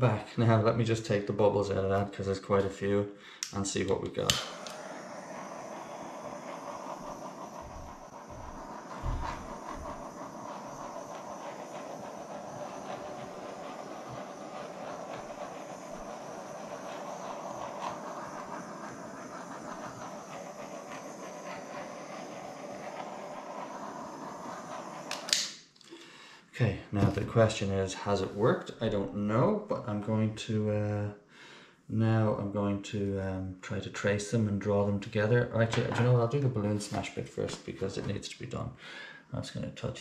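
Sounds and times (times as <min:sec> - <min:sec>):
butane torch hissing: 0:00.0 - 0:30.0, 0:34.0 - 0:39.4.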